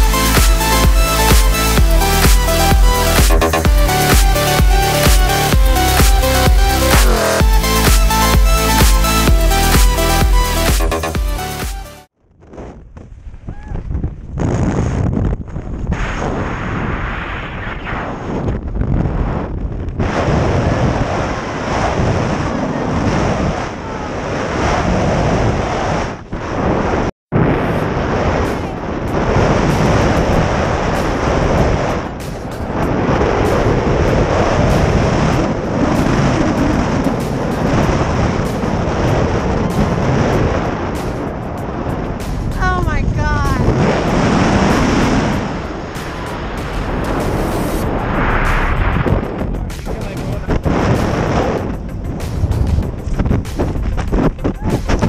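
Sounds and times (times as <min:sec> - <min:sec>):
music: 0:00.0 - 0:12.1, 0:28.2 - 0:55.0
wind rushing over microphone: 0:12.3 - 0:55.0.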